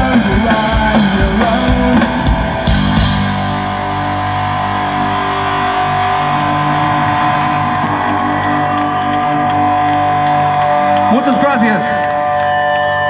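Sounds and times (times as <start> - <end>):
electric guitars and bass ringing: 0.0 - 13.0.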